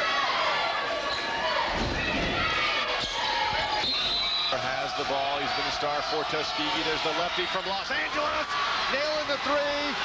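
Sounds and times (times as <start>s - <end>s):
crowd noise and voices: 0.0s - 10.0s.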